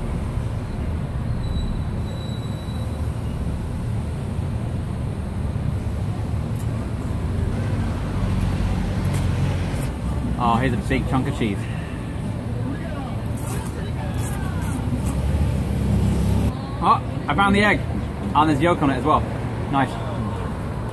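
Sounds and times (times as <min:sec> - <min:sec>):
low rumble of street traffic: 0:00.0 - 0:20.9.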